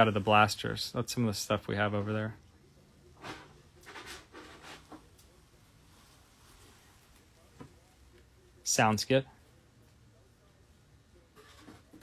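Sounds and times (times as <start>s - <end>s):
faint indistinct speech: 2.0s - 12.0s.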